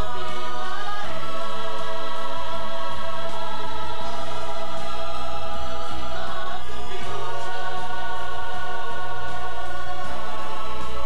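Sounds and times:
chorus singing long held notes: 0:00.0 - 0:11.0
music: 0:00.0 - 0:11.0.

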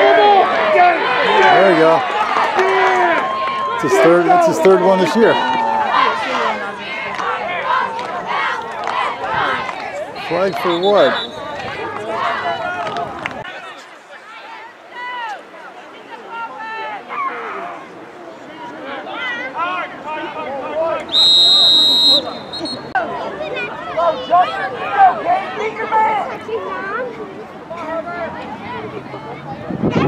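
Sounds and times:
spectators chattering: 0:00.0 - 0:30.0
referee's whistle blast: 0:10.5 - 0:11.5, 0:21.1 - 0:23.0.

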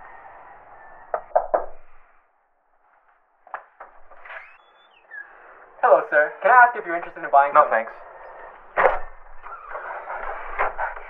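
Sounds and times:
knocks on door: 0:01.1 - 0:01.8.

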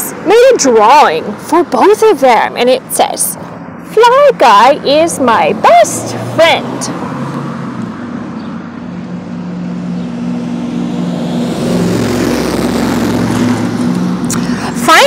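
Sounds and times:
motor vehicle passing: 0:00.0 - 0:15.0.

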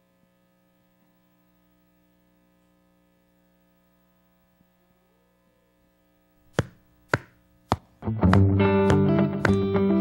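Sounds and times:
faint electrical hum: 0:00.0 - 0:10.0
sharp count-in tap: 0:06.5 - 0:09.8
guitar-led band playing: 0:08.0 - 0:10.0.

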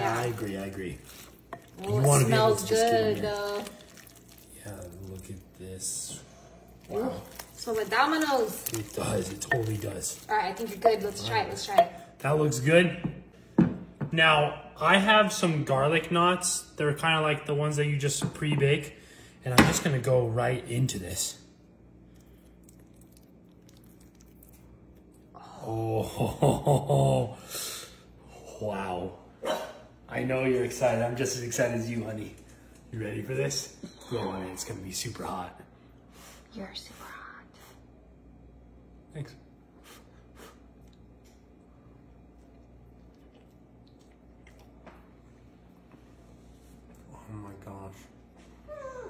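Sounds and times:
bread squishing through dip: 0:00.0 - 0:05.6, 0:06.8 - 0:11.3
low steady hum: 0:00.0 - 0:49.0
soft wet chewing: 0:00.1 - 0:11.3, 0:21.9 - 0:25.4, 0:39.8 - 0:47.1.

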